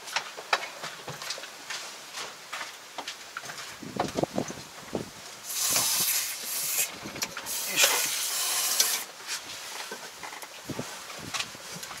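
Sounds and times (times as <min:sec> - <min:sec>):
loud hiss: 0:05.4 - 0:09.4.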